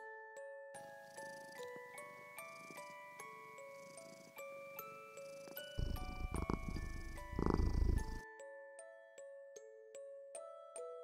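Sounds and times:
glockenspiel lullaby music: 0.0s - 11.0s
low fluttering rumble: 5.8s - 8.1s.

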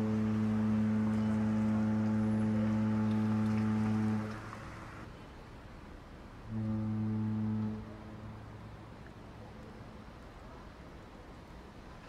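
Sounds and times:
ship horn low blast: 0.0s - 5.1s, 6.4s - 8.9s
faint open air hiss: 0.0s - 12.0s.

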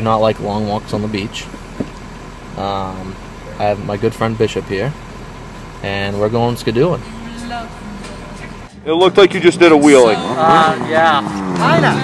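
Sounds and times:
man talking: 0.0s - 1.6s, 2.6s - 5.0s, 5.8s - 7.1s, 8.7s - 11.9s
vehicle engine idling: 0.0s - 12.0s.

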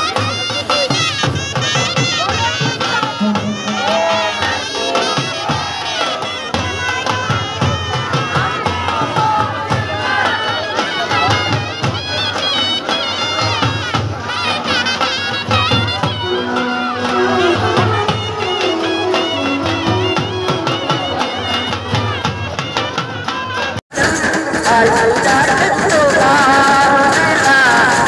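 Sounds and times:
reedy wind instrument melody: 0.0s - 26.5s
folk music drum beats: 0.0s - 28.0s
crowd shouting and cheering: 2.2s - 28.0s.

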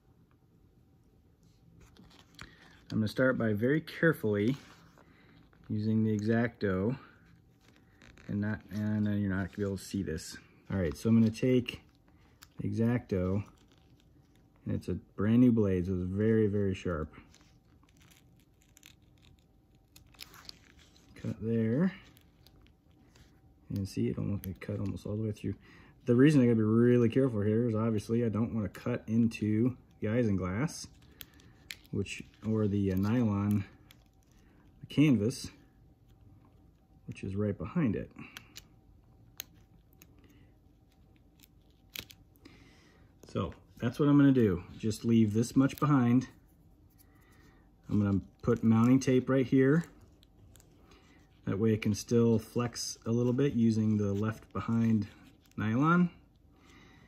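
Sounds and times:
crackles: 1.4s - 15.0s, 16.7s - 25.9s, 28.8s - 37.4s, 38.0s - 57.0s.

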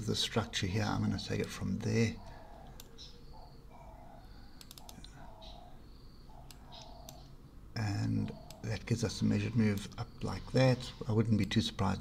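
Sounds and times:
low background hum: 0.0s - 12.0s
computer mouse clicks: 2.6s - 3.2s, 4.5s - 5.6s, 6.3s - 7.3s.

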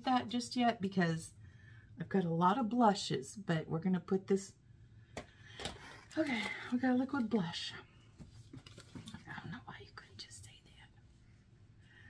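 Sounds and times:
woman whispering: 9.1s - 11.1s.

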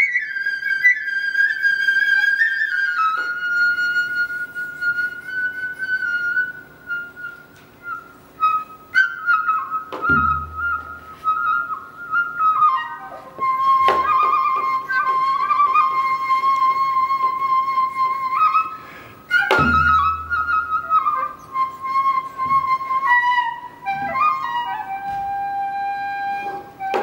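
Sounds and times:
bamboo flute melody: 0.0s - 27.0s
low thumps: 10.0s - 11.0s, 19.3s - 21.0s.

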